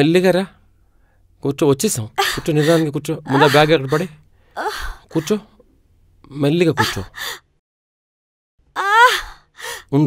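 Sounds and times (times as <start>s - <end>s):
person speaking: 1.9s - 5.6s, 6.3s - 7.3s
woman gasping: 2.2s - 5.3s, 6.8s - 7.4s, 9.0s - 9.9s.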